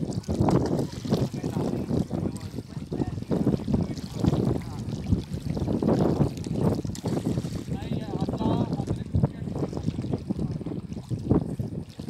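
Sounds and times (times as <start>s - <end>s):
waves lapping on pebbles: 0.0s - 12.0s
wind rumbling on microphone: 0.0s - 12.0s.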